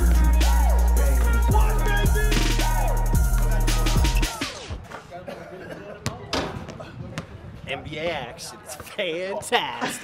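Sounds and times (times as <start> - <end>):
men shouting excitedly: 0.3 - 4.6.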